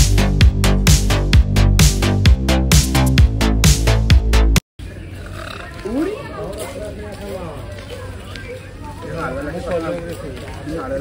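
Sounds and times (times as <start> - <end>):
distant voices: 4.8 - 11.0.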